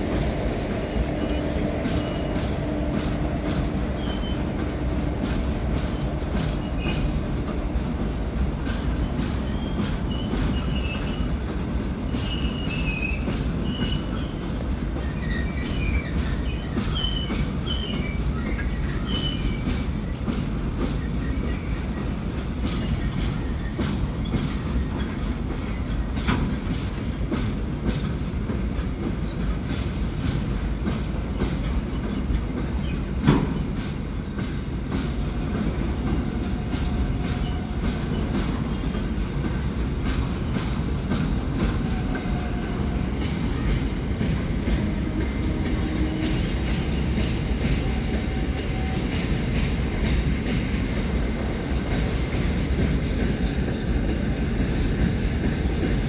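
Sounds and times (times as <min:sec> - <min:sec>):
train wheels rumbling on rail: 0:00.0 - 0:56.0
high-pitched wheel squeal: 0:12.1 - 0:21.9, 0:24.9 - 0:27.4, 0:28.7 - 0:31.8, 0:40.7 - 0:43.7.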